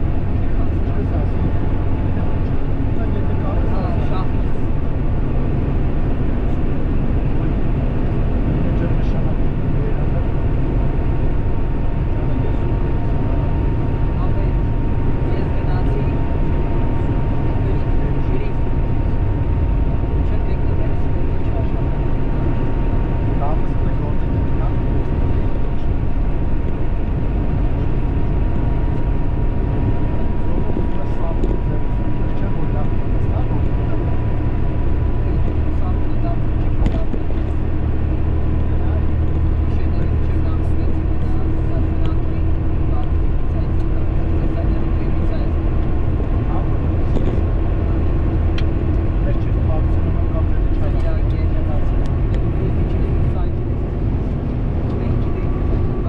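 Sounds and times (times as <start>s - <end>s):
car driving with road noise: 0.0s - 56.0s
faint rising whine: 0.0s - 56.0s.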